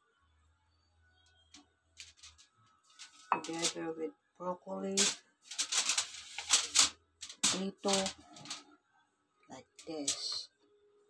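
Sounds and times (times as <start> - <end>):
aluminum foil crinkling: 2.0 - 3.8, 5.0 - 8.7, 9.8 - 10.4.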